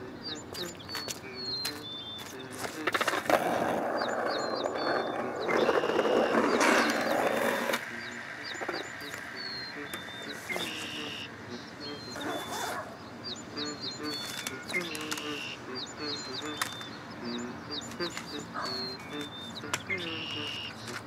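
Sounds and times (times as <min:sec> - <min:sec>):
small birds chirping: 0:00.0 - 0:21.0
skateboard wheels rolling on pavement: 0:00.3 - 0:10.8.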